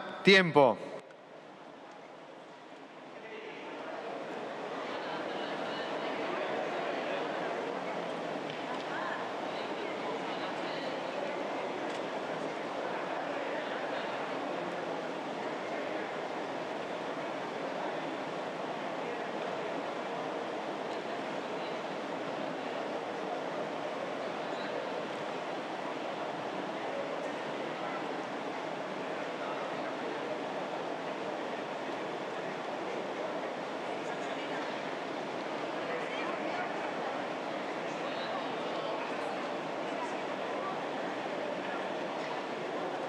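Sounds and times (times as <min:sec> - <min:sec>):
chatter of many people: 0:00.0 - 0:43.0.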